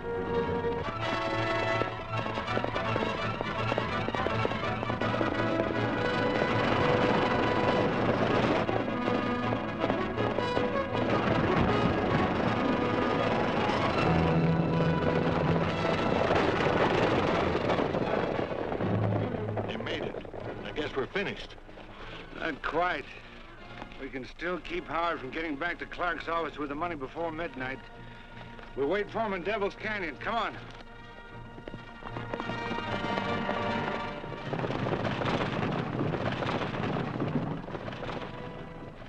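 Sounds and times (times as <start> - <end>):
dramatic orchestral music: 0.0 - 18.0, 18.6 - 34.6
galloping horses' hooves: 0.0 - 39.0.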